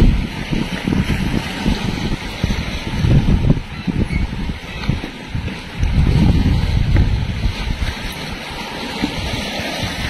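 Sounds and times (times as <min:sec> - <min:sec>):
river water washing: 0:00.0 - 0:10.0
wind buffeting microphone: 0:00.0 - 0:10.0.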